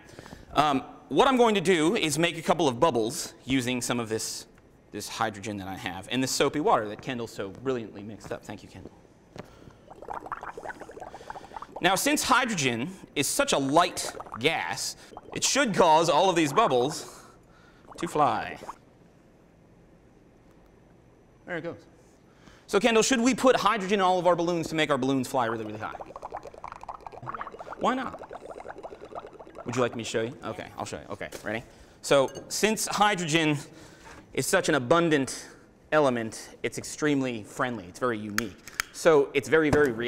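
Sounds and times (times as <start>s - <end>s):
bubbling in soapy water: 9.7s - 12.6s, 13.4s - 17.1s, 17.8s - 18.8s, 24.7s - 30.4s.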